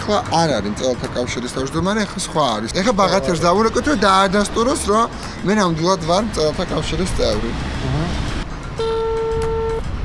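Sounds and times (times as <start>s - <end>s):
street background noise: 0.0s - 10.0s.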